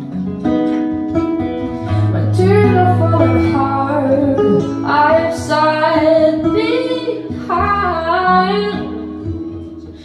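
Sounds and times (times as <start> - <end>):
acoustic guitar: 0.0 - 10.0
woman singing into microphone: 1.8 - 9.7.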